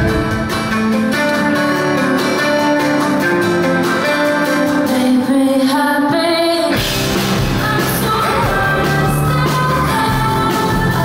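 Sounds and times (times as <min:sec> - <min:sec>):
pop-rock band playing: 0:00.0 - 0:11.0
woman singing: 0:04.8 - 0:06.8, 0:07.4 - 0:11.0.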